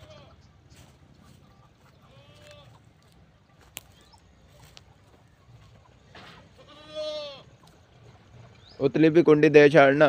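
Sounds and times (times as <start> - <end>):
farm animal bleat: 0.0 - 3.0, 6.2 - 7.7.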